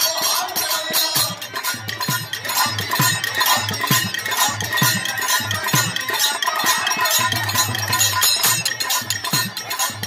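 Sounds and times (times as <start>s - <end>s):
jingling metal percussion: 0.0s - 10.0s.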